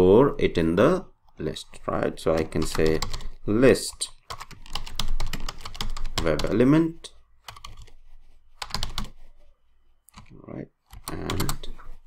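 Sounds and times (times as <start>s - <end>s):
computer keyboard typing: 2.3s - 3.4s, 4.2s - 6.6s, 7.5s - 7.9s, 8.6s - 9.2s, 10.1s - 11.7s.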